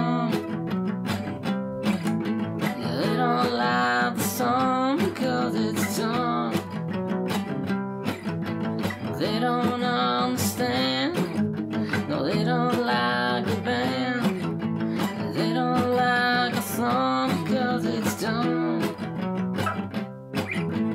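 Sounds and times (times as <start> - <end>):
song with strummed acoustic guitar: 0.0 - 20.9.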